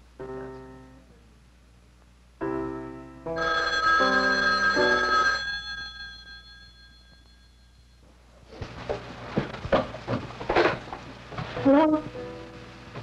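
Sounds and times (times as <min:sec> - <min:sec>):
piano chords: 0:00.2 - 0:01.1, 0:02.4 - 0:05.1, 0:11.6 - 0:13.0
telephone bell ringing: 0:03.4 - 0:08.0.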